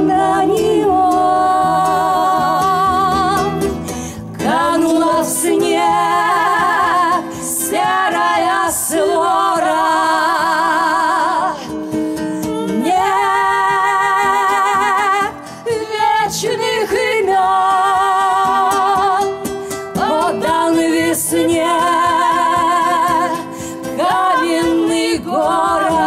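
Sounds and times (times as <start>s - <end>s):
acoustic bass guitar: 0.0s - 26.0s
acoustic guitar: 0.0s - 26.0s
women singing in harmony: 0.0s - 26.0s.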